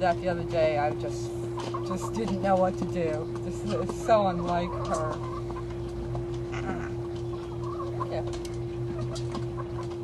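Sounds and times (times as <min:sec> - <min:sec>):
hens clucking: 0:00.0 - 0:10.0
steady low hum: 0:00.0 - 0:10.0.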